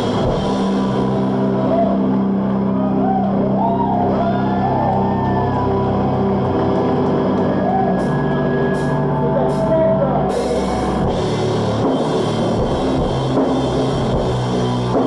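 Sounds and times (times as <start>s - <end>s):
electric guitars and bass chords: 0.0s - 15.0s.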